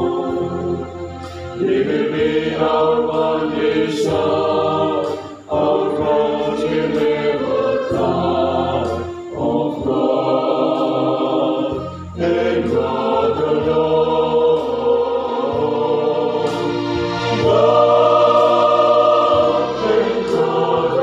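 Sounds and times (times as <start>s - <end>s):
voices singing together: 0.0s - 21.0s
steady low bass: 11.8s - 21.0s.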